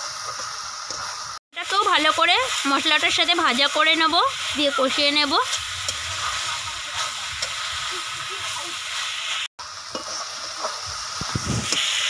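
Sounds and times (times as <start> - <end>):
food sizzling in pan: 0.0 - 12.0
metal spatula scraping pan: 4.4 - 8.6, 9.9 - 11.9.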